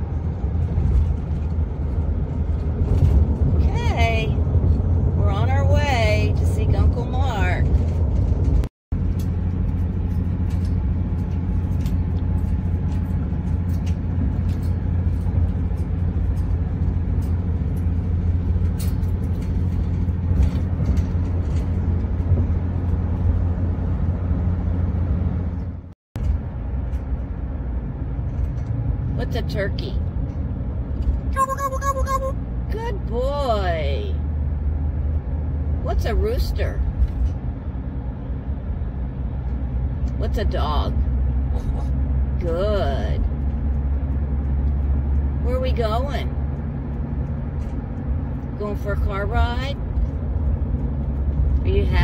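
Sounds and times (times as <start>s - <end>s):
car cabin road rumble: 0.0s - 52.0s
voice warbling: 31.4s - 32.4s.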